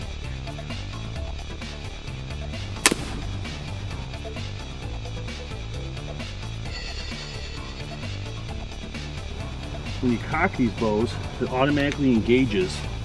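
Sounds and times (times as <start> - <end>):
background music with steady beat: 0.0 - 13.0
sharp crack: 2.8 - 4.1.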